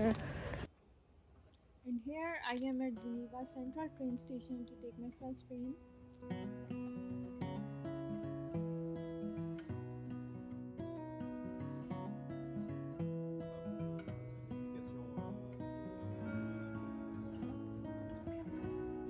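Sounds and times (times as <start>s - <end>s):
plucked acoustic guitar tune: 2.1s - 19.0s.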